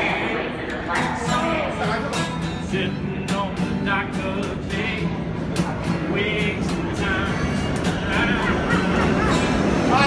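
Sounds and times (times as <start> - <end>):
acoustic guitar strumming: 0.0 - 10.0
man singing: 1.0 - 9.2.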